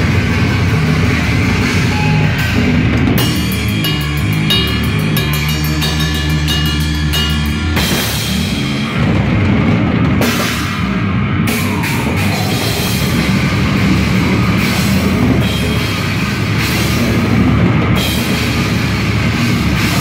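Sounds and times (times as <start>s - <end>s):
distorted electric guitars: 0.0s - 20.0s
drum kit with crashing cymbals: 0.0s - 20.0s.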